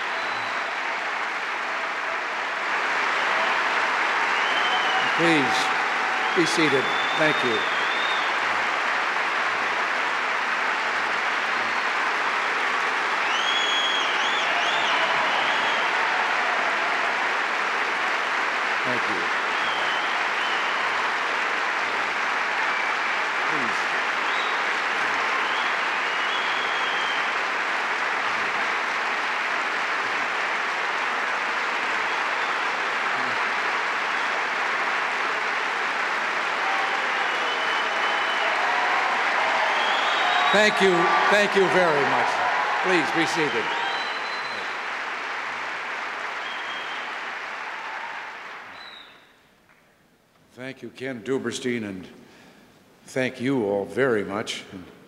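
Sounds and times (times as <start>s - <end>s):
high whistles: 0.0s - 0.8s, 4.3s - 5.5s, 6.2s - 8.5s, 13.2s - 16.0s, 19.5s - 21.0s, 24.2s - 27.4s, 36.9s - 44.9s, 46.3s - 47.2s, 48.7s - 49.5s
audience applause: 0.0s - 49.8s.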